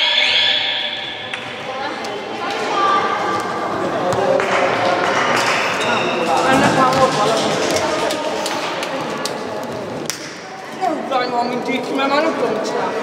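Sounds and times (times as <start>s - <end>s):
young voices chattering: 0.0s - 13.0s.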